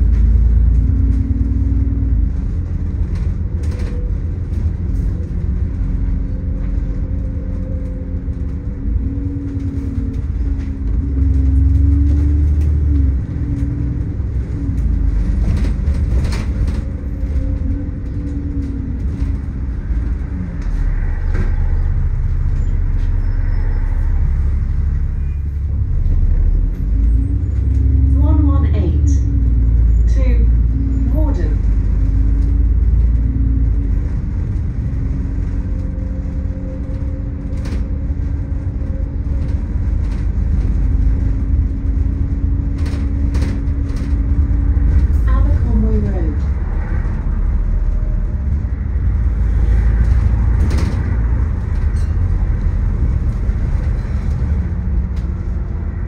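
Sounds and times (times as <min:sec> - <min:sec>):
bus engine and road rumble: 0:00.0 - 0:56.0.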